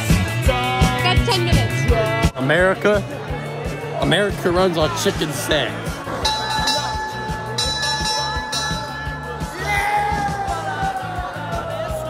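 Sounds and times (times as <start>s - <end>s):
background music with steady beat: 0.0s - 12.0s
metal bell ringing: 6.2s - 10.2s.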